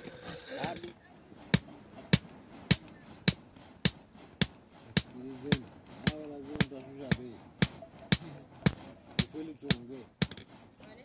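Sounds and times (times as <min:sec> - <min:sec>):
hammer striking metal: 0:00.6 - 0:10.5.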